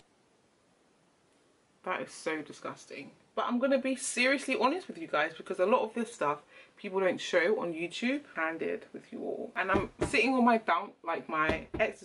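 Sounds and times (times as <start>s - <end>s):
woman speaking: 1.8s - 12.0s.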